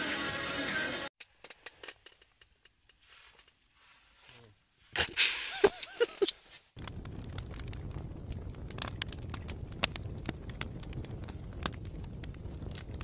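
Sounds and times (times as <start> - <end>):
campfire crackling and popping: 5.8 - 13.0
low rumble of burning fire: 6.8 - 13.0.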